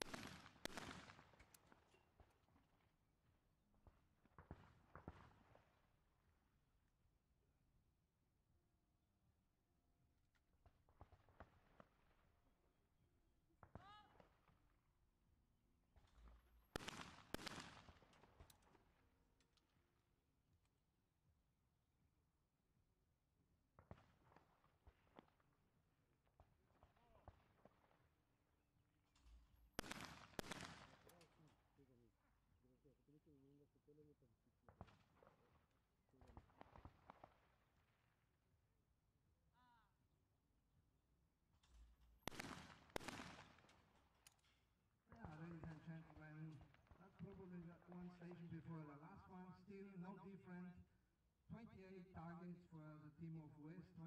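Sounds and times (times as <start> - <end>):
shotgun shots with echo: 0.0 - 1.5, 16.8 - 18.5, 29.8 - 31.3, 42.3 - 43.9.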